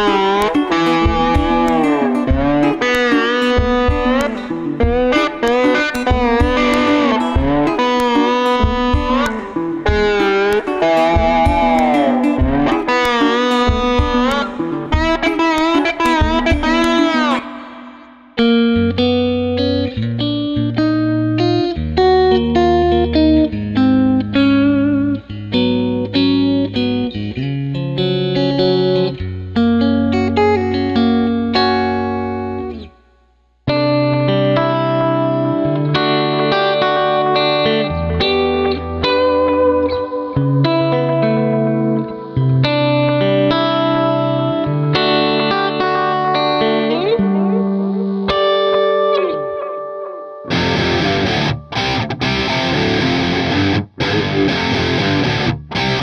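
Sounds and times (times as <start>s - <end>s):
low bass notes: 0.0s - 27.4s, 50.5s - 56.0s
electric guitar picked notes: 0.0s - 56.0s.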